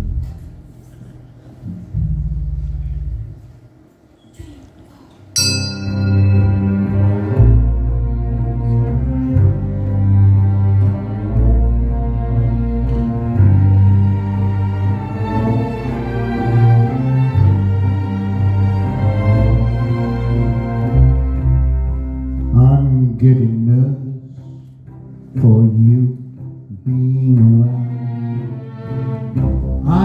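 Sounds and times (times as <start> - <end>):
low held bass note: 1.7 - 3.5
band with strings playing: 5.4 - 30.0.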